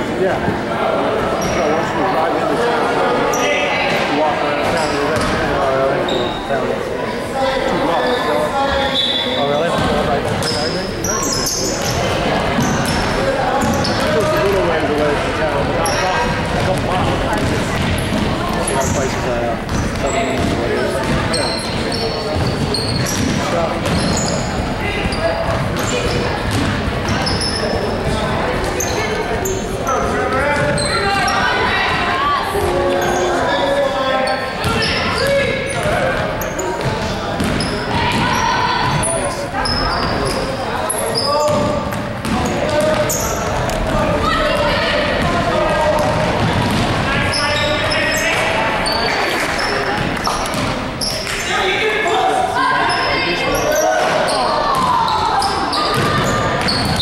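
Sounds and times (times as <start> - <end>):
echoing spectator chatter: 0.0 - 57.0
sneakers squeaking: 1.2 - 2.0, 3.1 - 6.6, 7.4 - 57.0
basketball bouncing on wooden floor: 19.7 - 21.8, 36.8 - 39.0.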